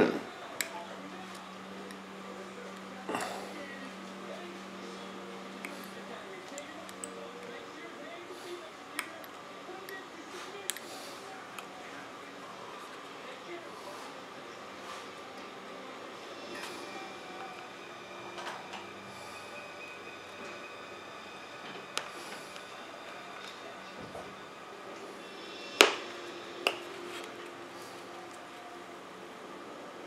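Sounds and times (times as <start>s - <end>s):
faint handling and scraping: 0.5s - 20.7s, 21.5s - 28.8s.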